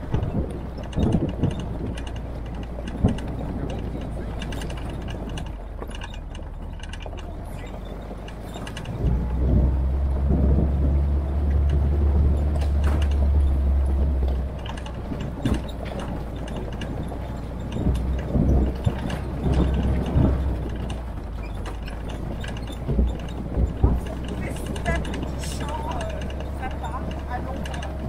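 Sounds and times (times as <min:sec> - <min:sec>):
body rattles and knocks: 0:00.0 - 0:28.0
jeep engine rumbling: 0:00.0 - 0:28.0.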